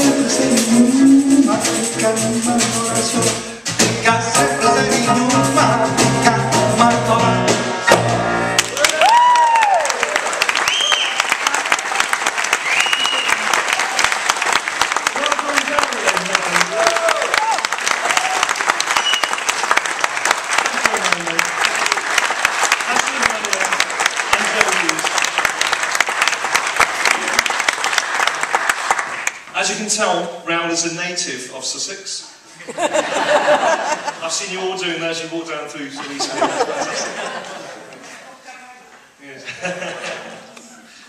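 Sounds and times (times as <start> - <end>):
band music: 0.0 - 8.8
whoops and cheers: 8.6 - 11.3, 12.6 - 14.1, 16.7 - 19.3
audience applauding: 8.6 - 29.5.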